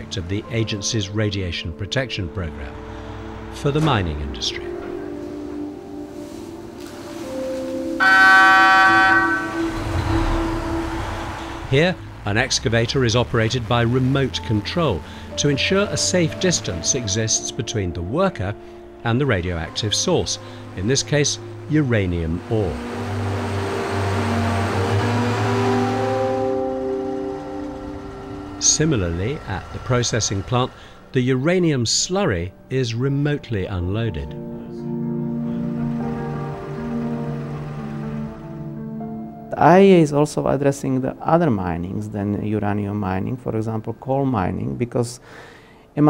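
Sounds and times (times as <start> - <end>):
sustained music tones: 0.0 - 44.7
mine loader machine running: 8.0 - 17.0, 19.4 - 31.2, 35.5 - 38.8
steady low hum: 18.2 - 32.7.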